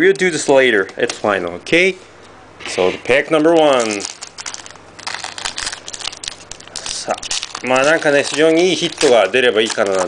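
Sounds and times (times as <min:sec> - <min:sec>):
foil wrapper tearing and crinkling: 0:03.3 - 0:10.0.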